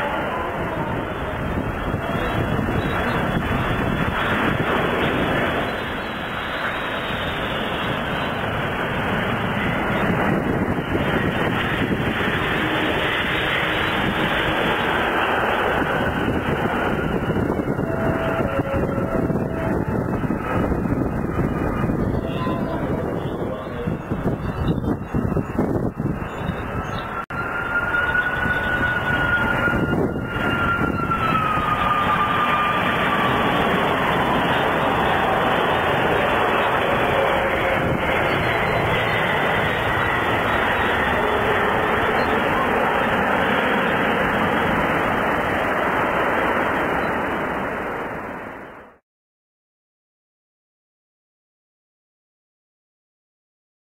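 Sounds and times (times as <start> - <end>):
jet engine whine falling in pitch: 0.0 - 49.0
jet engines roaring: 0.0 - 49.0.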